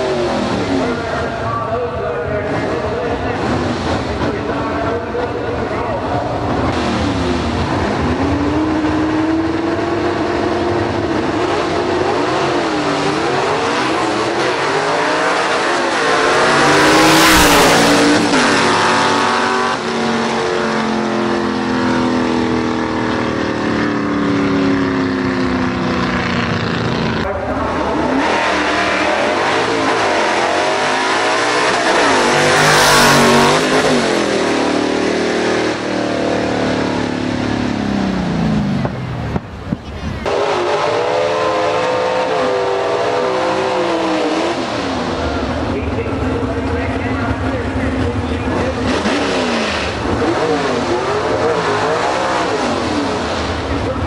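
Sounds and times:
drag car engines revving: 0.0 - 54.0
drag cars launching at full throttle: 0.0 - 54.0.

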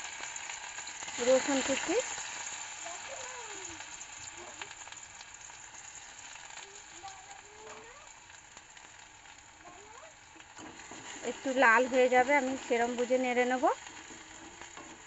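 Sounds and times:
garlic sizzling in hot oil: 0.0 - 15.0.

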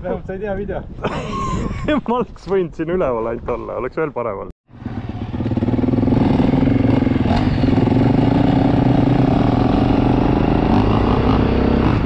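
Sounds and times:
motorcycle engine running: 4.7 - 12.0.

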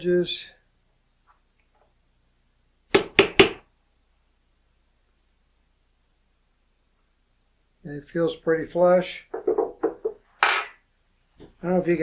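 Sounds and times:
metal pick scraping steel die: 10.4 - 10.8.

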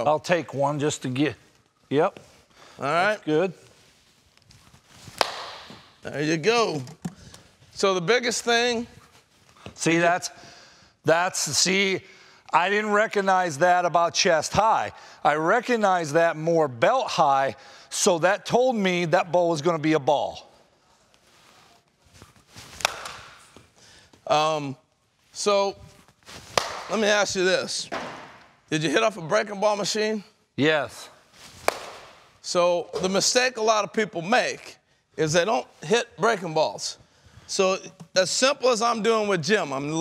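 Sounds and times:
sharp crack of bat on ball: 5.2 - 5.8, 22.8 - 23.4, 26.6 - 26.9, 31.6 - 32.2
bat swishing: 21.4 - 23.7, 26.2 - 26.9, 31.4 - 32.4.

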